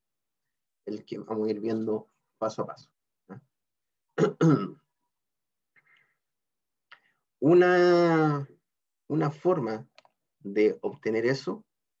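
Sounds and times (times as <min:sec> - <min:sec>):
person clearing throat: 0:04.2 - 0:04.9.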